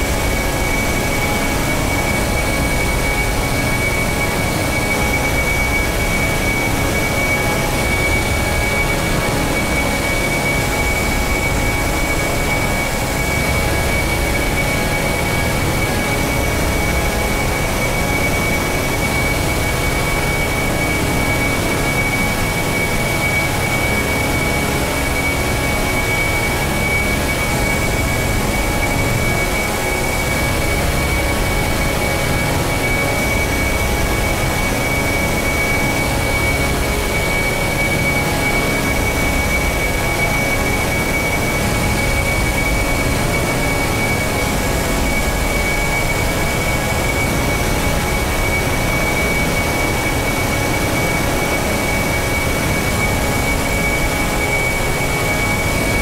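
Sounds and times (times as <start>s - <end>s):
rumbling drone with high whistle: 0.0s - 56.0s.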